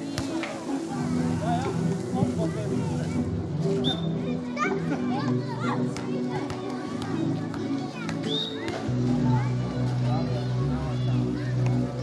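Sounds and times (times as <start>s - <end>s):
background music: 0.0s - 12.0s
children calling and shouting: 0.0s - 12.0s.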